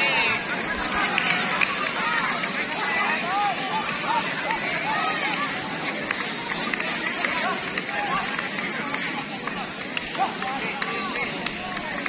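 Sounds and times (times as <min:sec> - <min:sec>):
crowd babble: 0:00.0 - 0:12.0
crowd shouts and calls: 0:00.0 - 0:12.0.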